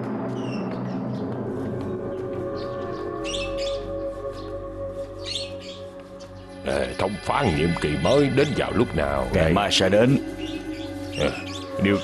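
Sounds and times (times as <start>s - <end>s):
music of long held notes: 0.0s - 12.0s.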